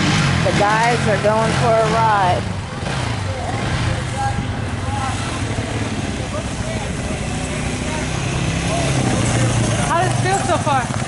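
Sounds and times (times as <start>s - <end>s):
quad engines running: 0.0s - 11.0s.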